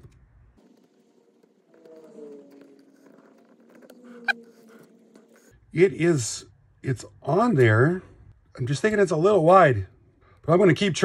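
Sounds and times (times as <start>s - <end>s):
rubber band squeaking: 1.6s - 5.6s.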